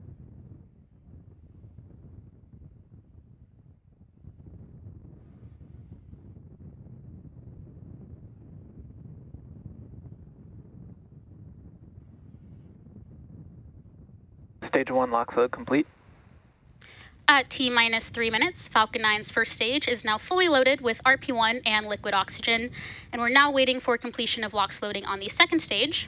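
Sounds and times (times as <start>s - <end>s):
wind buffeting microphone: 17.0s - 26.0s.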